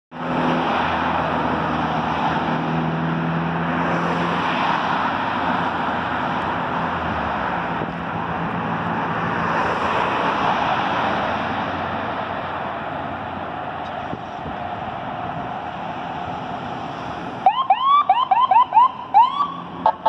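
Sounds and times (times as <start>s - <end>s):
road traffic passing: 0.1s - 20.0s.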